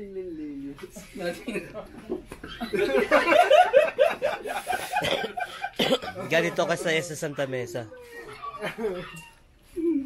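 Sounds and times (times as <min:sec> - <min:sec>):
men chattering and laughing: 0:00.9 - 0:10.0
man coughing: 0:05.0 - 0:06.3.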